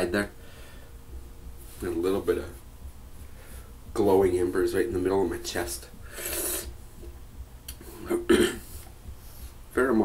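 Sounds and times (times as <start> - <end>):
man hissing breath: 6.0 - 6.8.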